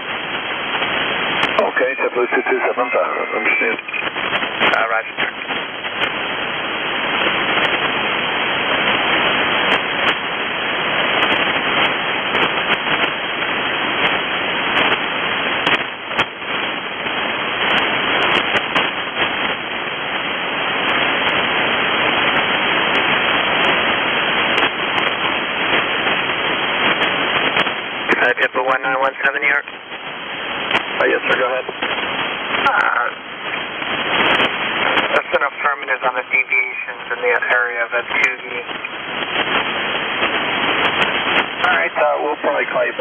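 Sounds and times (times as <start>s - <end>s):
radio static hiss: 0.0s - 43.0s.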